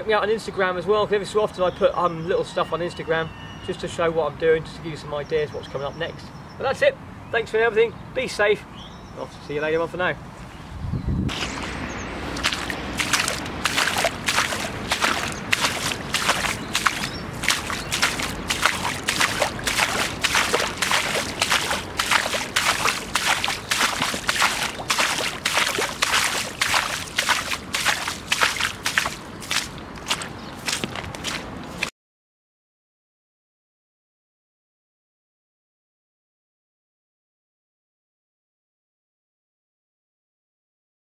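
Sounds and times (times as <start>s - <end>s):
grass swishing against boots: 11.3s - 31.9s
rubber boots walking through wet grass: 11.4s - 31.9s.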